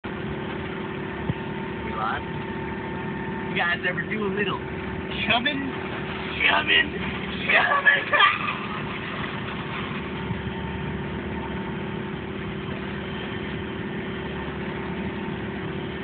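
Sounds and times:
boat engine droning: 0.0s - 16.0s.

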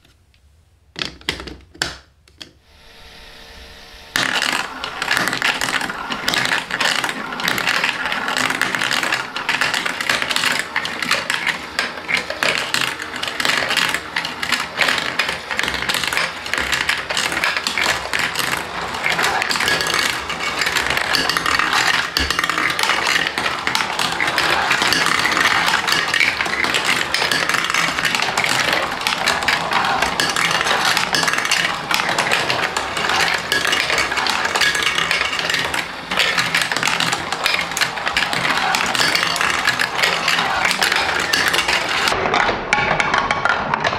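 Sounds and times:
plastic marbles rattling on a track: 4.2s - 43.9s.

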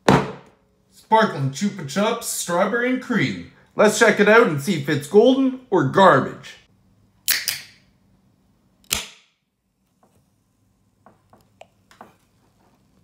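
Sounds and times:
sharp crack: 8.9s - 9.4s.

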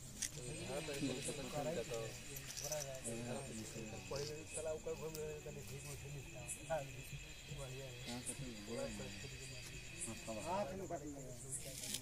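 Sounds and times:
crickets trilling: 0.0s - 12.0s
people talking: 0.2s - 12.0s.

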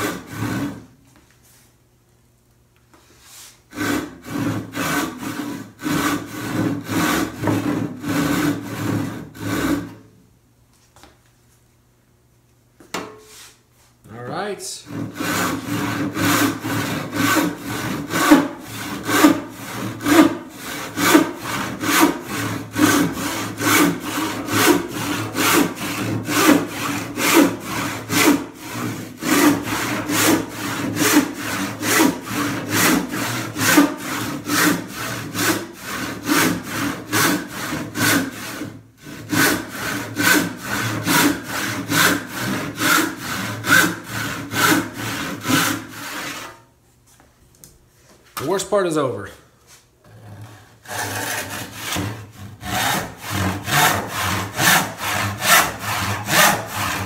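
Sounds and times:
hand saw rasping through wood: 0.0s - 0.8s, 3.4s - 10.0s, 14.8s - 46.6s, 50.0s - 57.0s.

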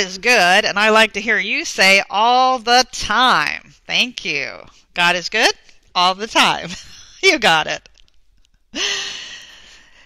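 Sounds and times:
woman sighing: 8.7s - 10.0s.

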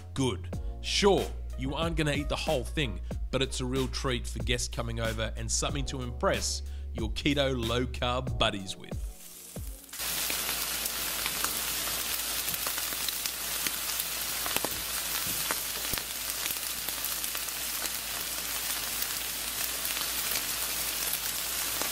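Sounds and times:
steak sizzling on a grill: 9.2s - 21.9s.

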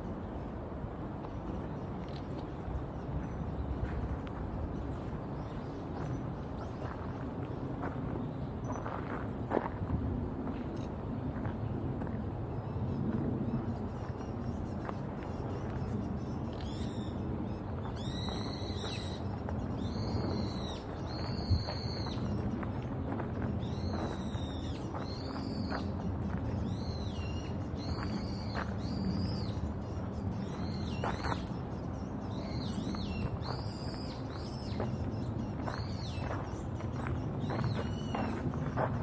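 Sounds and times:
bird calling: 17.8s - 22.4s.

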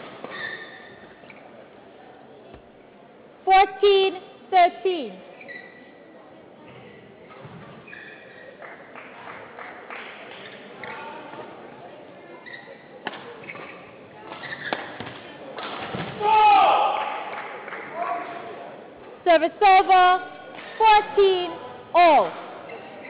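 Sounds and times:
shoes squeaking on floor: 0.2s - 1.4s, 5.3s - 6.0s, 6.7s - 8.6s, 12.3s - 15.1s.

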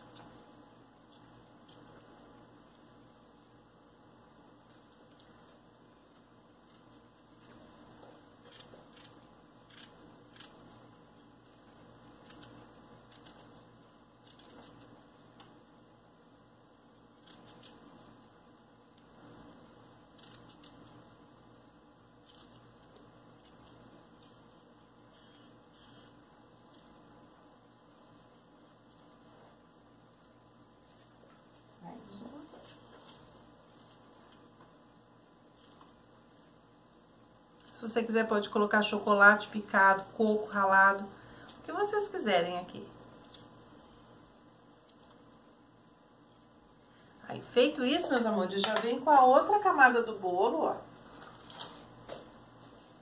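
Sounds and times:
knife cutting strawberries: 11.4s - 15.0s, 17.1s - 18.1s.

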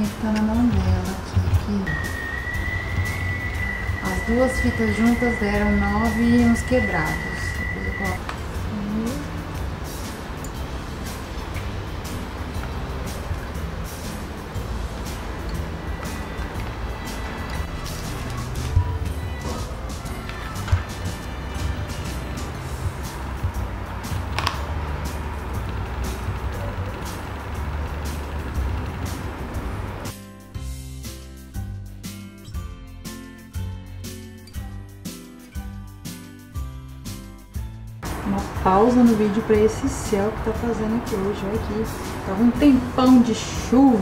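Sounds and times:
wind howling: 0.7s - 8.7s.

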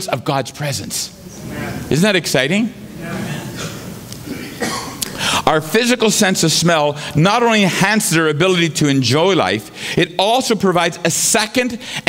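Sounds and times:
person coughing: 3.5s - 5.4s.

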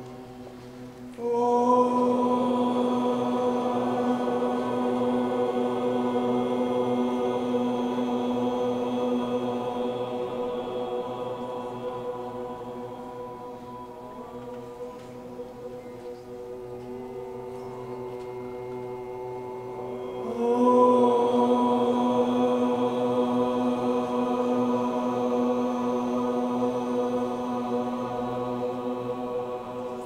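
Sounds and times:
group chanting: 1.2s - 30.0s.

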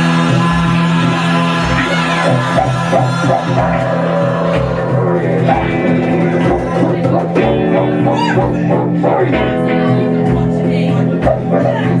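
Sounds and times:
live trance band music: 0.0s - 12.0s.

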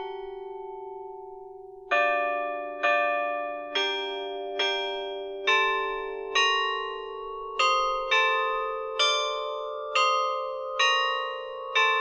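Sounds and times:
bell-like chimes melody: 0.0s - 12.0s.

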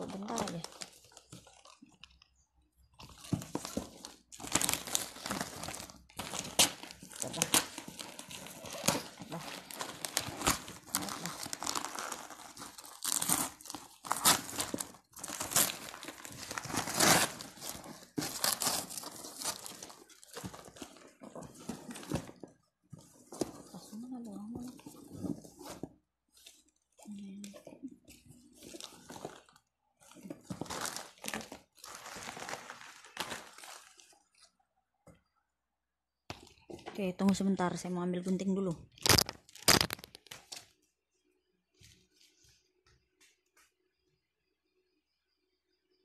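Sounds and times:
wrapping paper tearing and crumpling: 3.5s - 21.0s, 30.6s - 34.2s, 39.0s - 40.6s.

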